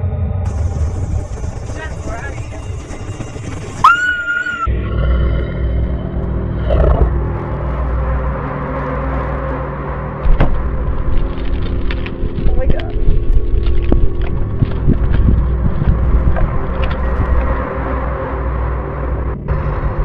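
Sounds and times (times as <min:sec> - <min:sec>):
droning score of held tones: 0:00.0 - 0:20.0
low rumbling drone: 0:00.0 - 0:20.0.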